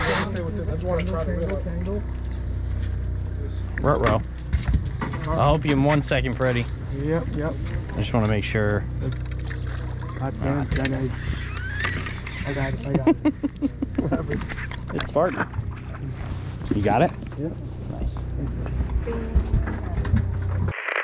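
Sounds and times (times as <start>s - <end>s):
boat engine humming: 0.0s - 20.7s
men talking and laughing: 5.1s - 19.0s.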